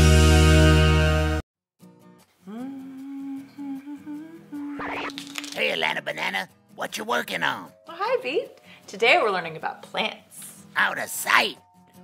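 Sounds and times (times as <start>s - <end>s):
woman humming: 2.4s - 5.3s.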